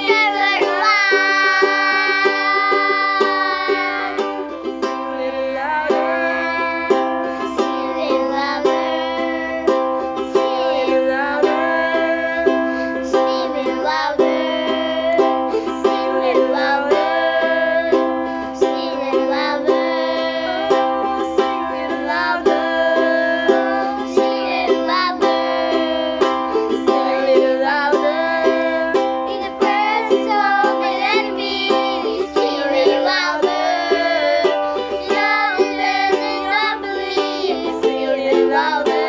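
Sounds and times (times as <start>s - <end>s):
ukulele strumming: 0.0s - 39.0s
woman and children singing: 0.0s - 39.0s.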